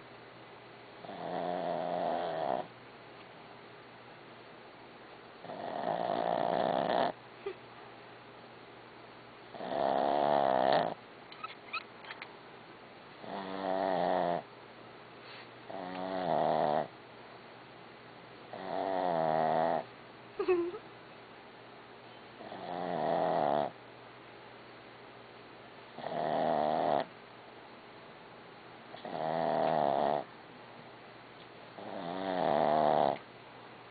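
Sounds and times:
dog snoring: 1.0 - 2.7, 5.4 - 7.2, 9.5 - 11.0, 13.2 - 14.5, 15.7 - 16.9, 18.5 - 19.9, 22.4 - 23.8, 26.0 - 27.1, 28.9 - 30.3, 31.8 - 33.2
short squeak: 11.3 - 12.3.

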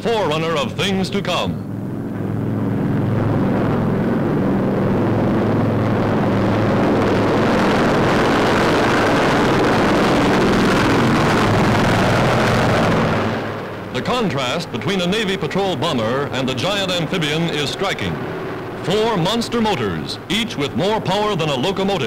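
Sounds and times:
aircraft piston engines droning: 0.0 - 22.0.

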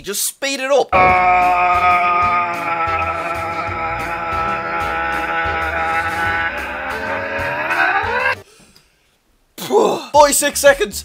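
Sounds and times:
man shouting on one pitch: 1.0 - 8.3.

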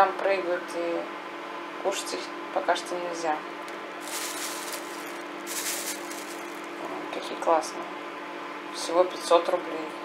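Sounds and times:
steady low hum: 3.6 - 8.4
plastic bag crinkling: 4.0 - 6.8
walnuts rustling: 4.0 - 6.8.

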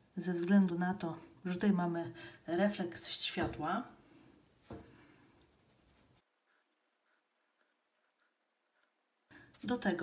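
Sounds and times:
brush strokes on paper: 4.6 - 9.9.

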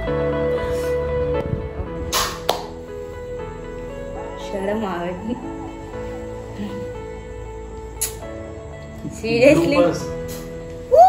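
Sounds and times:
background music with held notes: 0.0 - 11.0.

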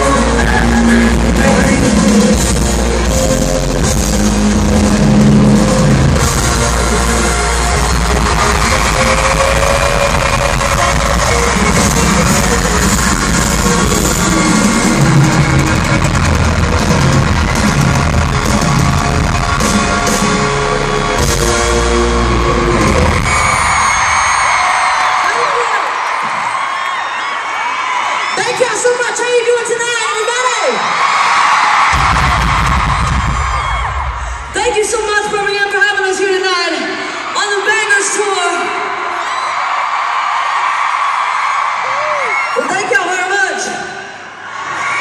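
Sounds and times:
live pop music with singing: 0.0 - 24.3
crowd cheering: 0.0 - 45.0.

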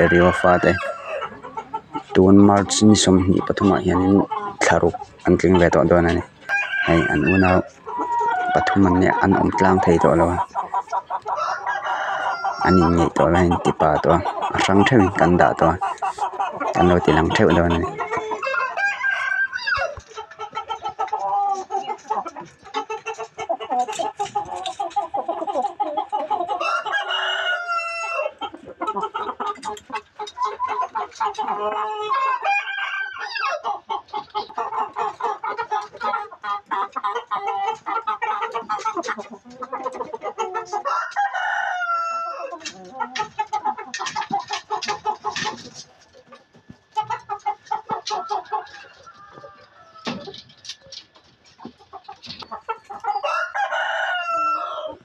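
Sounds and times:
chickens clucking: 0.0 - 55.0
rooster crowing: 6.5 - 7.6, 11.4 - 13.1, 18.4 - 20.0, 26.6 - 28.4, 32.1 - 33.6, 40.8 - 42.5, 53.1 - 55.0.

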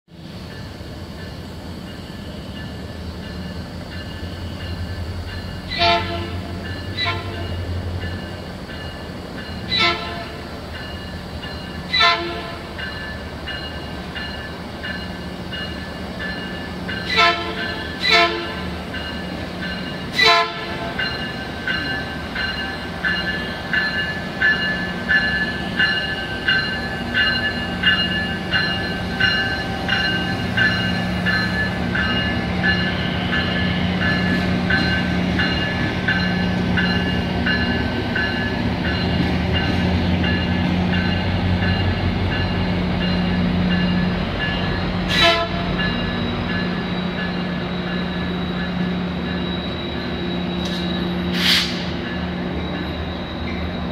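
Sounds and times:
locomotive bell ringing: 0.4 - 53.9
train horn toots: 5.7 - 7.6, 9.7 - 10.5, 11.9 - 12.8, 17.0 - 18.7, 20.1 - 21.0, 45.1 - 45.8.

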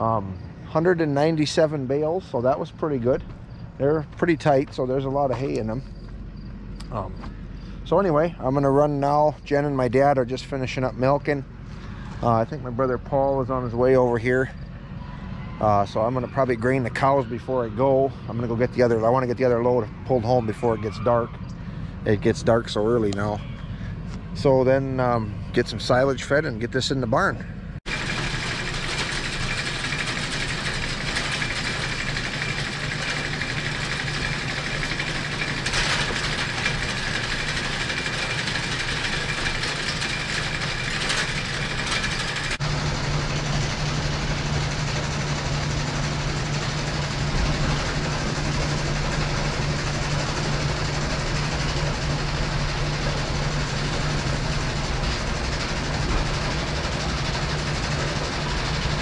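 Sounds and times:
hay elevator running: 0.0 - 59.0
steady low hum: 0.0 - 59.0.

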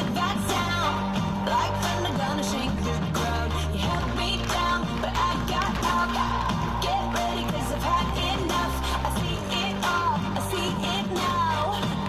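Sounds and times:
pop music with sung vocals: 0.0 - 12.0.

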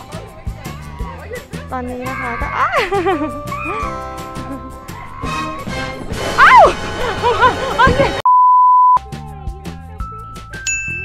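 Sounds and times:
excited voices: 0.0 - 8.2
high-pitched bleep: 8.2 - 9.0
background music with beat: 9.0 - 11.0.

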